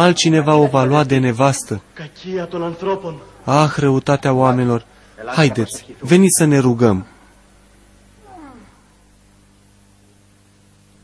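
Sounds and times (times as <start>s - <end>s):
woman's animal-like cry: 8.2s - 8.8s.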